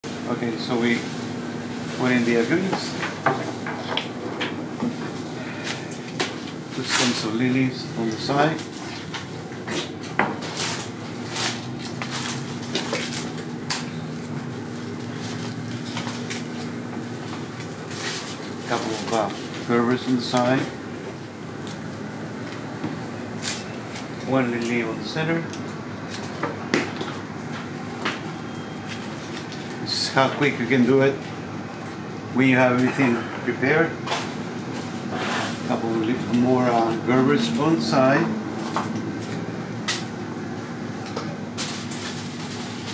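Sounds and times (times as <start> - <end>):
steady room hum: 0.0 - 42.9.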